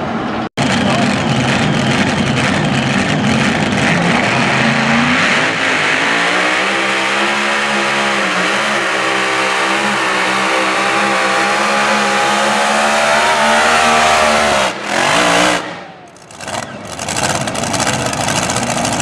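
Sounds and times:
tractor engine at full throttle: 0.0 - 19.0.

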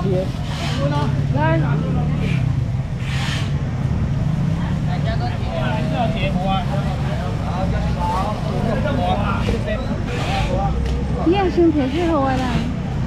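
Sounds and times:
people chattering: 0.0 - 13.0.

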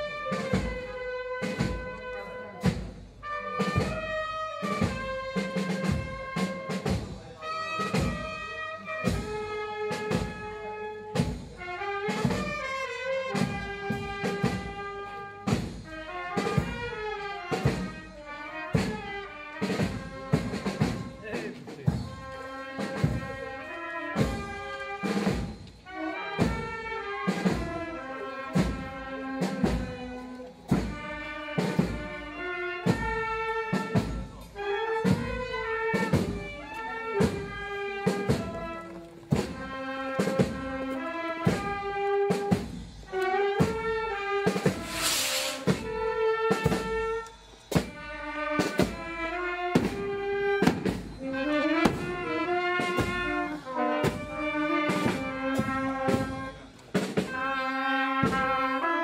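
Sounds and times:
street band playing a march: 0.0 - 59.0
cymbal crash: 44.7 - 45.8.

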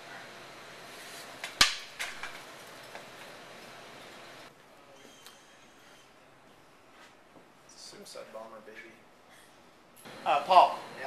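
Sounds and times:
prop swords clacking: 1.4 - 2.4.

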